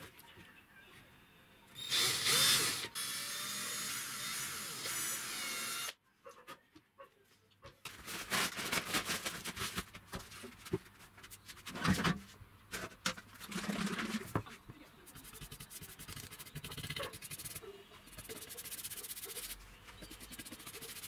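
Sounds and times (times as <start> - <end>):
cordless drill drilling into wood: 1.8 - 6.0.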